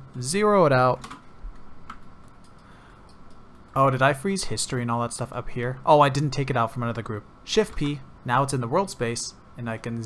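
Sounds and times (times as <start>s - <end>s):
keyboard and mouse clicks: 1.0s - 3.8s.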